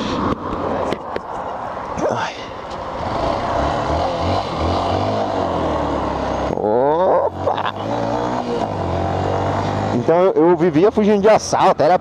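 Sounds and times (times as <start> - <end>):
motorcycle engine revving: 2.9 - 10.9.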